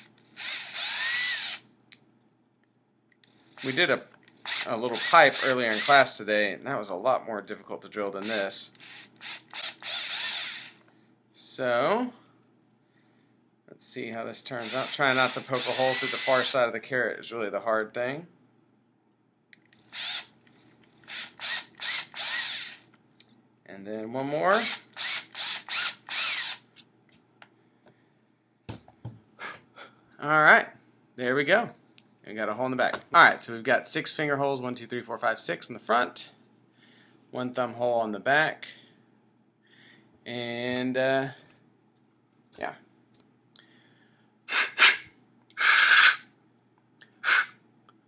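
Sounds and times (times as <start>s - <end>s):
cordless drill whirring: 0.0s - 1.6s, 3.2s - 6.0s, 8.2s - 10.8s, 14.6s - 16.5s, 19.8s - 22.8s, 24.5s - 26.7s.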